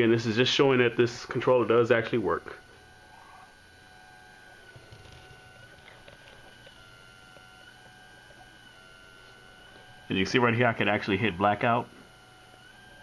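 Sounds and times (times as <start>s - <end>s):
high electronic whine: 0.0s - 13.0s
low steady hum: 0.0s - 13.0s.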